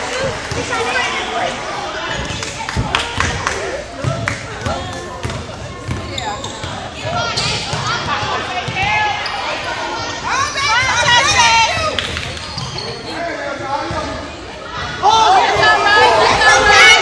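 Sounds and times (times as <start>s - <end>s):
spectators shouting: 14.8s - 17.0s.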